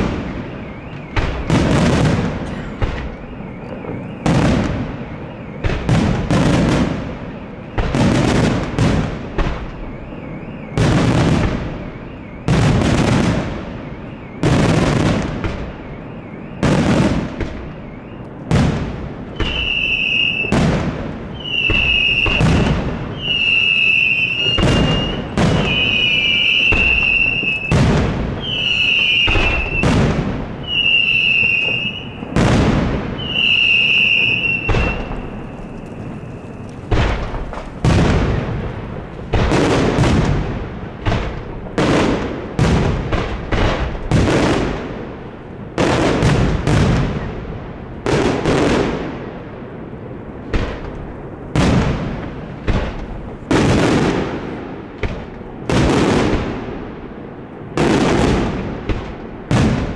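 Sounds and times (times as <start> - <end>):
high firework whistle: 0.0 - 40.3
firework shells bursting: 19.4 - 40.4.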